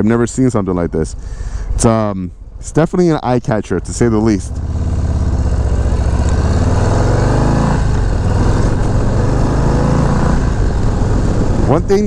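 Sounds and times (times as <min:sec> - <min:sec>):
motorcycle engine accelerating: 0:03.9 - 0:12.0.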